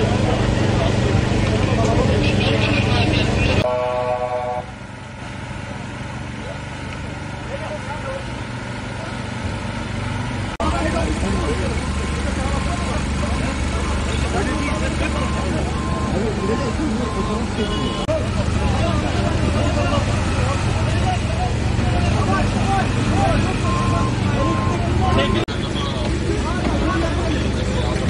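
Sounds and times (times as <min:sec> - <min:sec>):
crowd voices: 0:00.0 - 0:28.0
diesel engine running: 0:00.0 - 0:28.0
horn-like tone: 0:03.6 - 0:04.8, 0:17.4 - 0:18.2.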